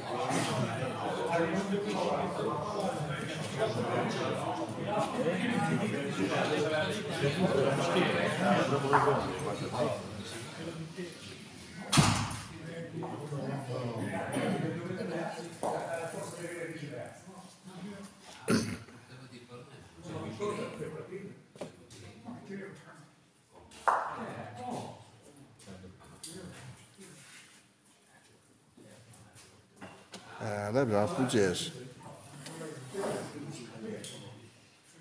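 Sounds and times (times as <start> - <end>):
men talking: 0.0 - 11.9, 12.5 - 17.9, 30.2 - 34.4
people talking indistinctly: 30.3 - 34.5.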